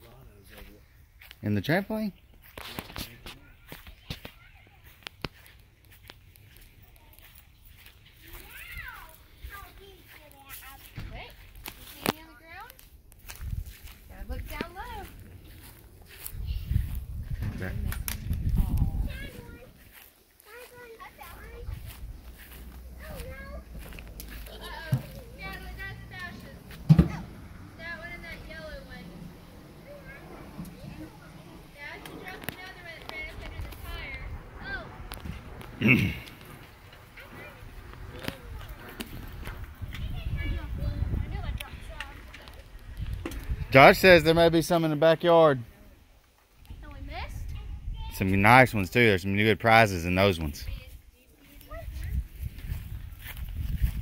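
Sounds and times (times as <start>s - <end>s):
distant children's voices: 2.4s - 43.9s, 50.7s - 54.0s.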